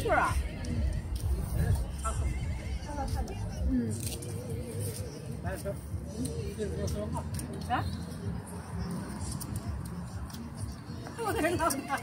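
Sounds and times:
people chatting: 0.0s - 0.8s, 11.2s - 12.0s
low microphone rumble: 0.0s - 7.4s.

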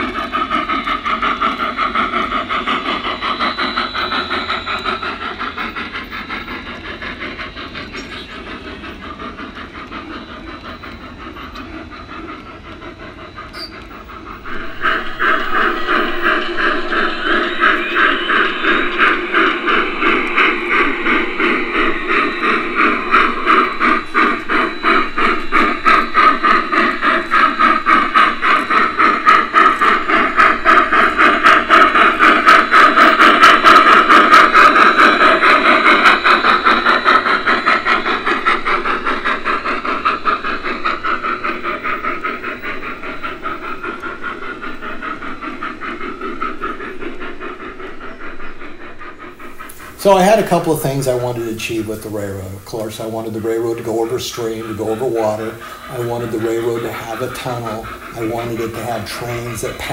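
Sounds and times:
model steam locomotive chuffing: 0.0s - 59.9s.

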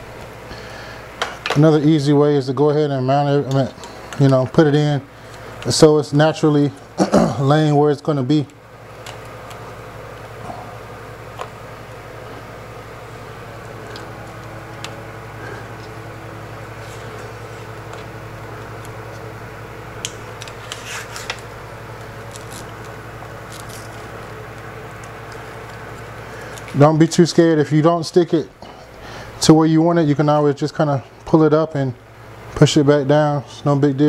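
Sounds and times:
low room hum: 0.0s - 34.0s
small handling clicks and rustles: 20.0s - 27.4s.

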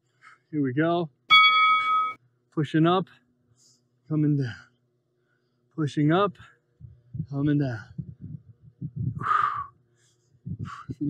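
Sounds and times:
soft breath: 3.5s - 5.7s, 7.8s - 11.0s.

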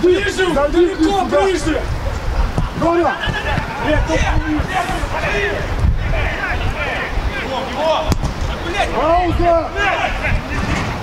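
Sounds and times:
players shouting: 0.0s - 11.0s
wind rumble on microphone: 0.0s - 11.0s
football kick thud: 8.1s - 8.4s.

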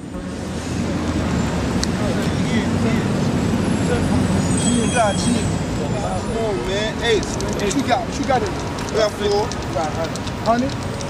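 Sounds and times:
faint voices: 0.0s - 11.0s
traffic rumble: 0.0s - 11.0s.

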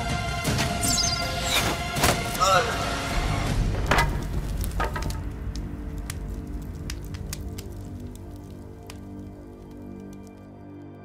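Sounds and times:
sustained music: 0.0s - 11.0s
fire crackling and popping: 3.4s - 11.0s.

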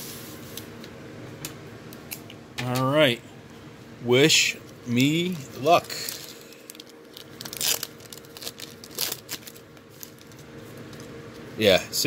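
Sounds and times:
foil packs rustling: 5.0s - 11.0s.

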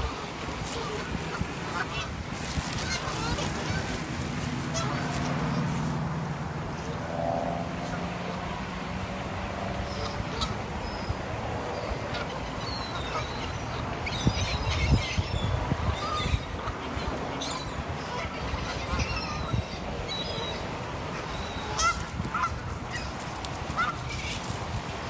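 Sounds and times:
geese honking: 0.0s - 6.0s, 9.7s - 10.9s, 11.6s - 24.5s.

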